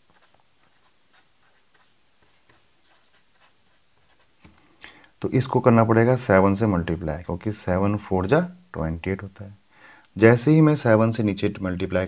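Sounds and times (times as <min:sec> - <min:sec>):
pen scratching on paper: 0:00.0 - 0:04.3.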